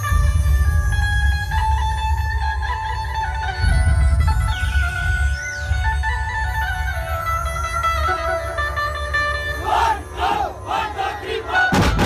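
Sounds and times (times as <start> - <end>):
shouted vocal cries: 9.6 - 11.7
loud drum hits: 11.7 - 12.0.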